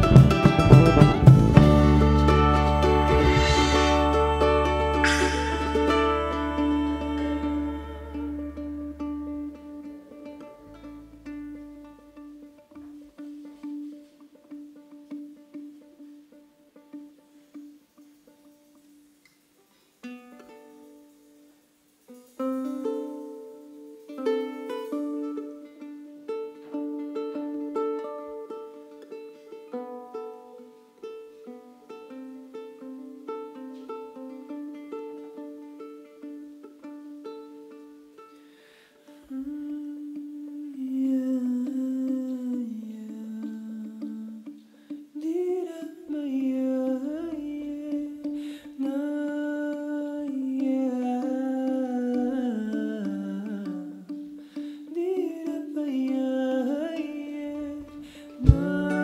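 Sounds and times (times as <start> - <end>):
person humming: 0.0 - 14.0, 39.0 - 59.0
plucked charango melody: 0.0 - 59.0.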